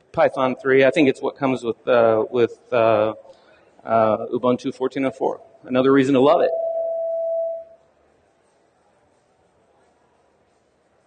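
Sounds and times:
steady pure tone: 0:00.0 - 0:07.8
faint room hiss: 0:00.0 - 0:11.0
person speaking: 0:03.9 - 0:07.0.

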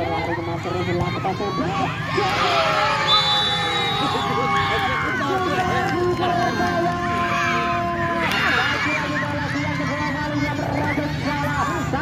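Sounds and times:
crowd talking and shouting: 0:00.0 - 0:12.0
high whistle-like tone: 0:03.0 - 0:04.0.

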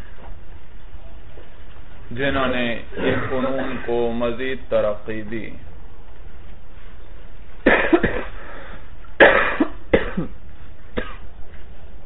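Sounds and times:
steady background hiss: 0:00.0 - 0:12.0
person coughing: 0:03.0 - 0:04.0, 0:07.6 - 0:10.4, 0:11.0 - 0:11.2.

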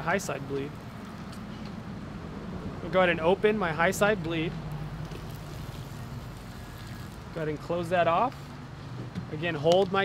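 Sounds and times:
water stream hissing: 0:05.2 - 0:07.4.

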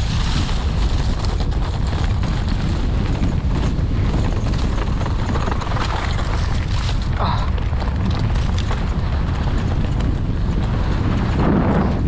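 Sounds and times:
bike rattling: 0:00.0 - 0:12.0
wind buffeting microphone: 0:00.0 - 0:12.0.

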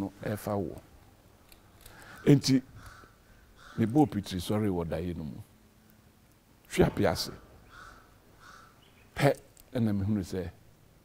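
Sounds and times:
man speaking: 0:00.0 - 0:00.9, 0:02.2 - 0:02.7, 0:03.8 - 0:05.5, 0:06.7 - 0:07.5, 0:09.2 - 0:10.6
bird calling faintly: 0:01.6 - 0:04.4, 0:07.3 - 0:09.5.

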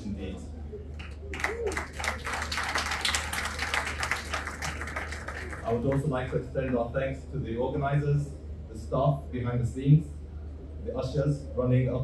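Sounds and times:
audience applauding: 0:01.0 - 0:06.1.

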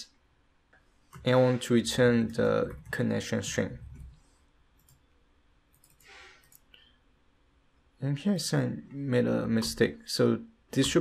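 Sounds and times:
computer keyboard clicks: 0:05.7 - 0:06.6.

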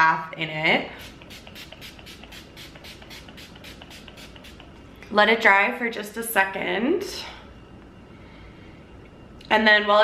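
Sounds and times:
spray bottle hissing sprays: 0:01.0 - 0:04.8.

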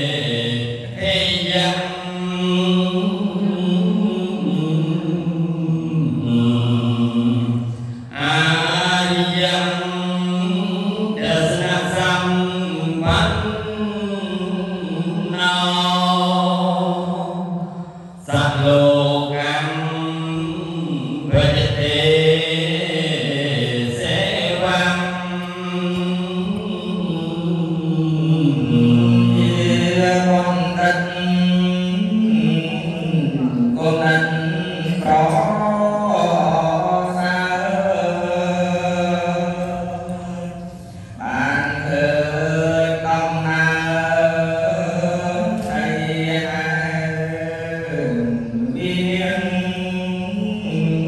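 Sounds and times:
man chanting: 0:00.0 - 0:51.0.

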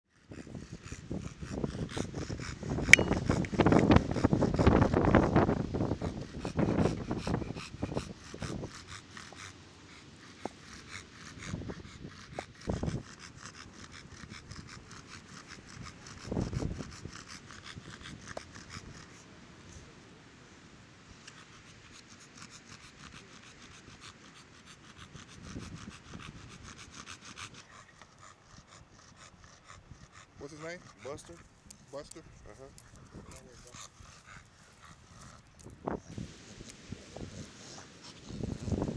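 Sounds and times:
dog panting: 0:00.1 - 0:19.3, 0:21.2 - 0:36.0, 0:36.6 - 0:38.9.

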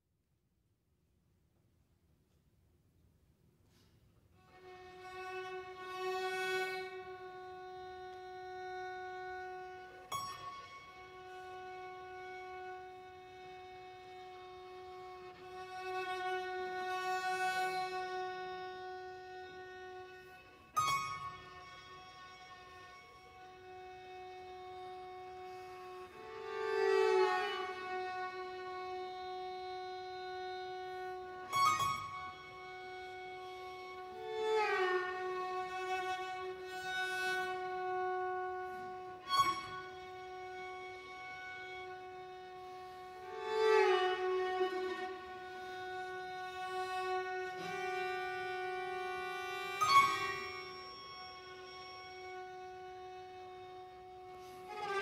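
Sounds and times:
violin holding long note: 0:04.4 - 0:55.0.

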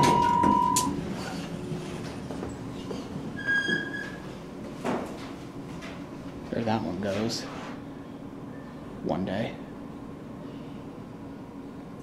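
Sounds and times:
electronic beep: 0:00.0 - 0:00.9
elevator doors sliding: 0:00.0 - 0:04.4.

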